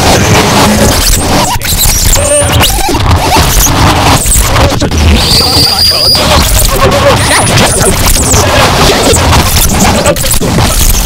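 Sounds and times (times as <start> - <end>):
scraping noise music: 0.0 - 11.0
sharp clicks: 0.0 - 11.0
short squeals: 0.9 - 11.0.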